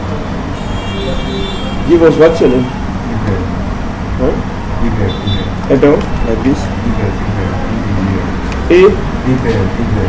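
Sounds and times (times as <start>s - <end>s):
man's voice: 1.8s - 3.6s, 4.2s - 10.0s.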